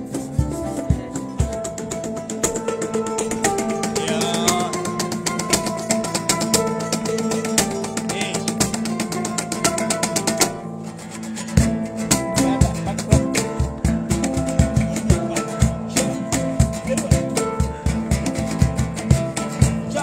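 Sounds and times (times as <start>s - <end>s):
acoustic guitar strumming: 0.0s - 20.0s
cajon thumps: 0.0s - 20.0s.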